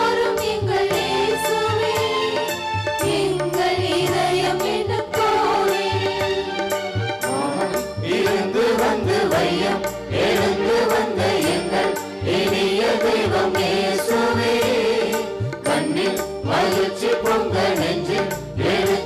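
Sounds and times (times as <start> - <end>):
people singing a hymn: 0.0 - 6.6, 8.0 - 19.0
instrumental accompaniment: 0.0 - 19.0.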